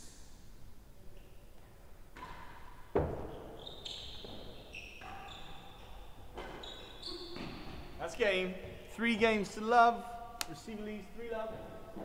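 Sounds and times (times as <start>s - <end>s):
faint high squeaks: 3.2s - 8.0s.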